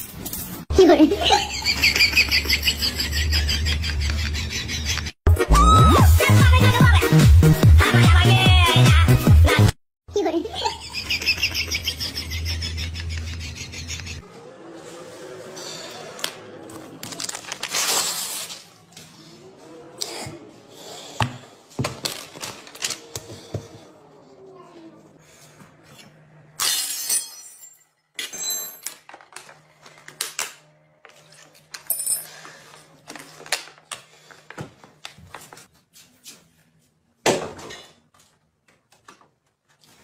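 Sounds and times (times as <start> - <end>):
background music: 5.3 - 9.8.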